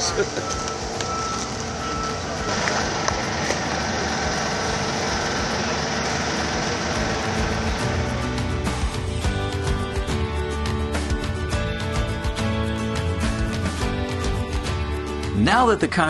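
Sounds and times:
construction trucks running: 0.0s - 16.0s
music: 0.0s - 16.0s
backup alarm beeping: 0.3s - 4.4s.

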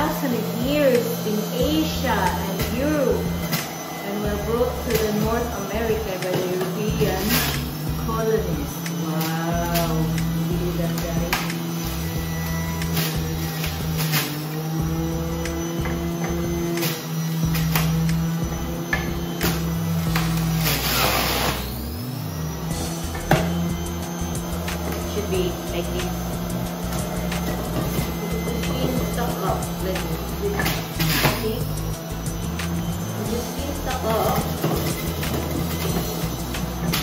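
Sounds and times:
juicer motor hum: 0.0s - 37.0s.

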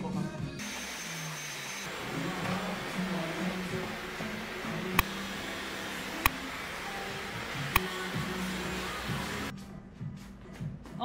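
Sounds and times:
hair dryer blowing: 0.6s - 9.5s.

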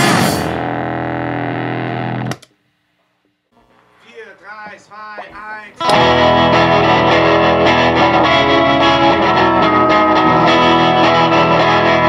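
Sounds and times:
distorted electric guitar chord: 0.0s - 2.3s, 5.8s - 12.0s.

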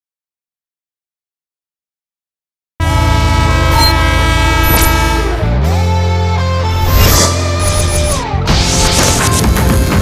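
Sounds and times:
train horn sound effect: 2.8s - 6.0s.

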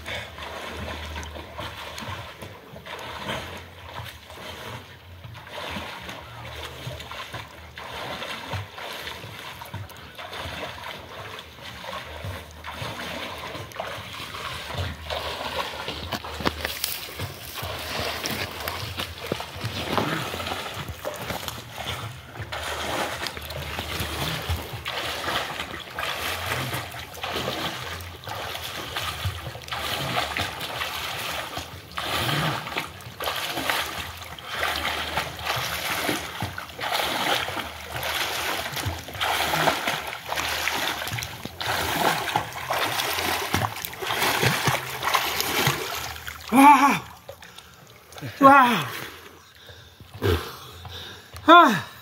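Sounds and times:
swimmer's arm strokes splashing: 0.0s - 48.2s.

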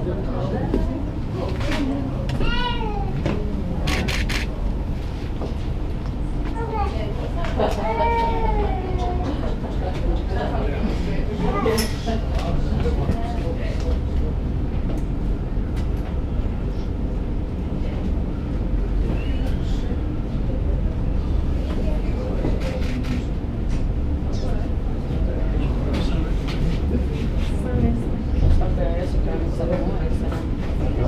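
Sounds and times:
faint voices: 0.0s - 31.0s
steady low rumble: 0.0s - 31.0s.

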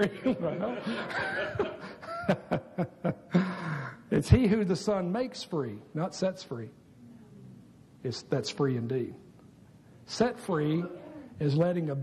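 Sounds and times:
higher laugh: 0.0s - 4.0s
man chuckling: 0.0s - 4.0s.

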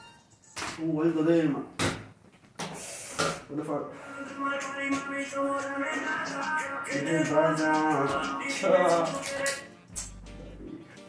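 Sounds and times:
music with held notes: 5.8s - 11.0s
person speaking: 6.9s - 9.5s.

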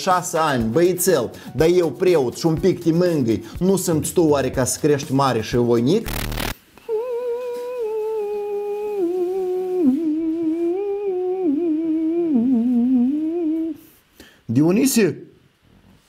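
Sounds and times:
person humming a melody: 6.8s - 13.9s.

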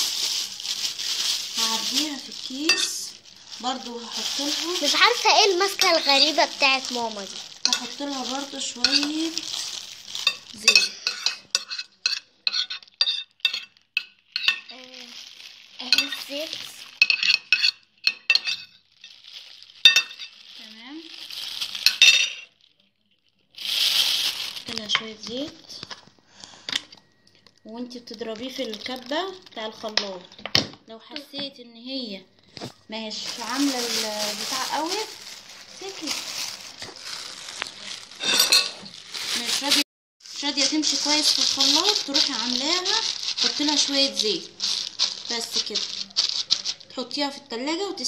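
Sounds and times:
plastic bag crinkling: 0.0s - 12.2s, 12.8s - 30.2s, 32.4s - 47.2s.

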